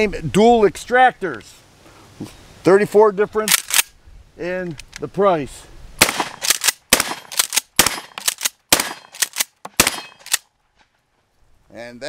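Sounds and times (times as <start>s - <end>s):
shotgun pump racking clack: 3.5s - 3.9s
shotgun shots: 6.0s - 10.4s.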